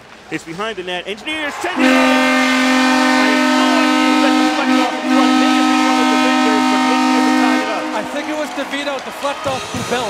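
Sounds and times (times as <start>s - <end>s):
crowd cheering: 0.3s - 10.0s
arena goal horn blast: 1.6s - 10.0s.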